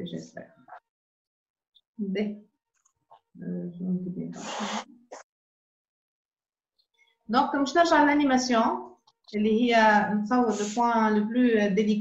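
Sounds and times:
breathy hiss: 4.4s - 4.9s.

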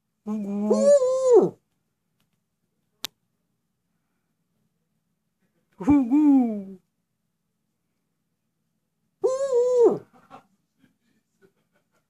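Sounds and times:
owl call: 9.2s - 10.0s.

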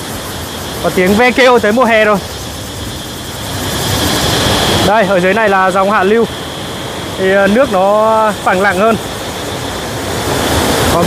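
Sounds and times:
cicada buzz: 0.0s - 11.0s.

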